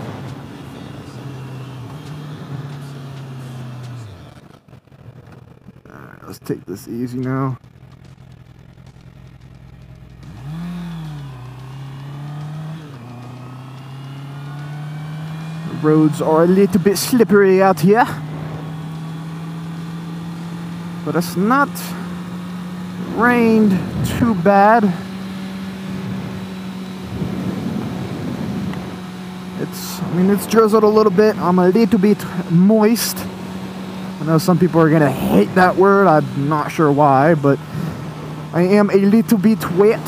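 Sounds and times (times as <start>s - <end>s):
motorcycle engine revving: 0.0s - 40.0s
wind and road noise: 0.0s - 40.0s
wind noise: 27.0s - 29.0s.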